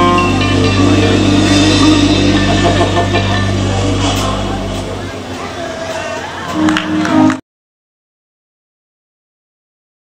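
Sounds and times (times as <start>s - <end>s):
live jazz band playing: 0.0s - 7.4s.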